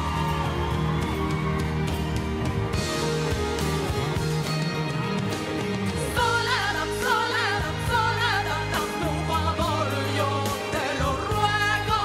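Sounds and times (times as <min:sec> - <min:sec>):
drums keeping steady beat: 0:00.0 - 0:08.2
live pop band: 0:00.0 - 0:12.0
woman singing into microphone: 0:06.2 - 0:12.0.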